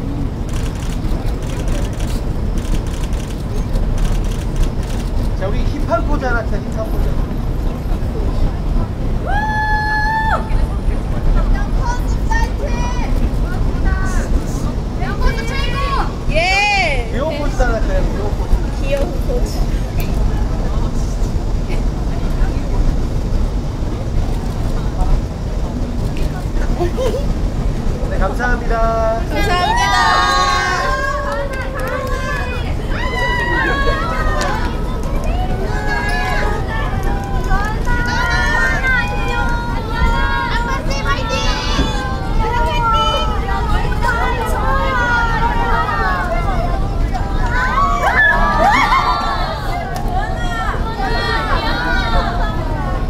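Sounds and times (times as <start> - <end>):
crowd voices: 0.0 - 53.0
outdoor street noise rumble: 0.0 - 53.0.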